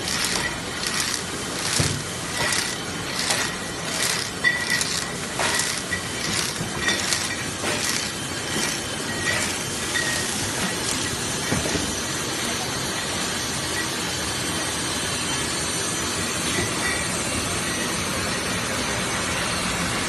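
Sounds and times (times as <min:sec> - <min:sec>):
sharp machine clicks: 0:00.0 - 0:11.1
glass bottles clinking: 0:00.0 - 0:11.8
labeling machine running: 0:00.0 - 0:11.8.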